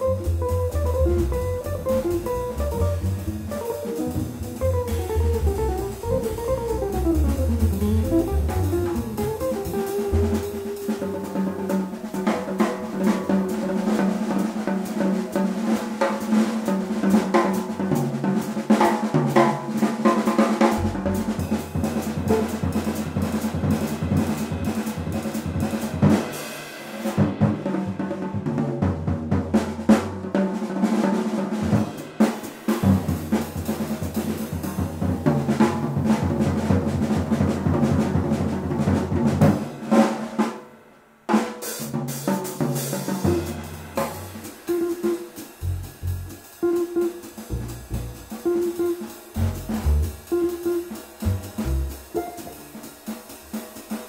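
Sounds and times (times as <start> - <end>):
jazz drum solo: 0.0 - 54.0.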